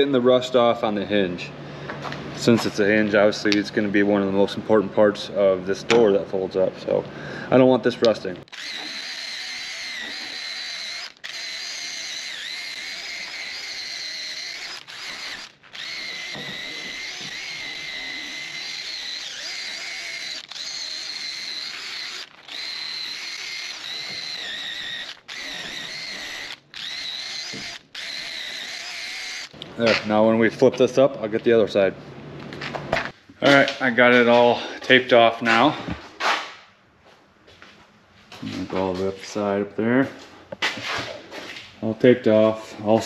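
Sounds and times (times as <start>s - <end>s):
wire brush on drill whining: 8.4s - 29.9s.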